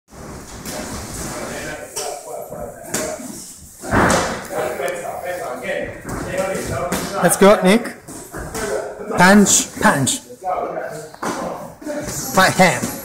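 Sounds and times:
voices in room: 0.2s - 13.0s.

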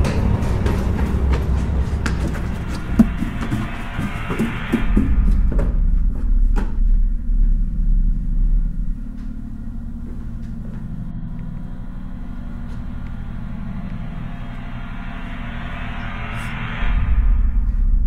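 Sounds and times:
low rumbling drone: 0.0s - 18.0s.

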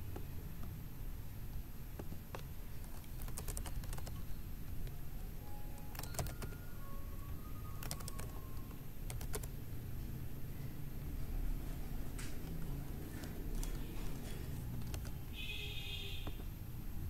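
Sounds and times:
low background hum: 0.0s - 17.0s
computer keyboard typing: 1.9s - 9.7s, 12.3s - 15.4s.

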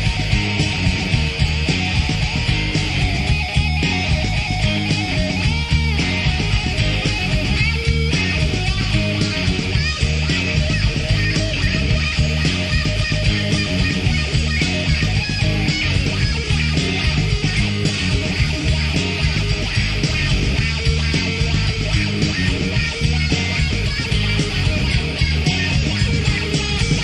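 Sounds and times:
rock song with guitar: 0.0s - 27.0s.

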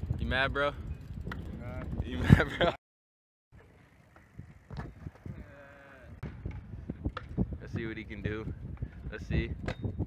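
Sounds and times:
scooter wheels and deck clacking: 3.6s - 5.6s, 6.2s - 10.0s
scooter rolling on concrete: 3.6s - 9.9s
voices calling out: 5.2s - 6.2s.

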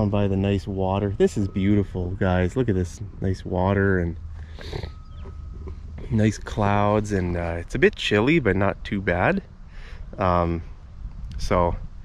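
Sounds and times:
faint thin steady tone: 0.0s - 11.8s
wind rumbling on microphone: 0.0s - 12.0s.

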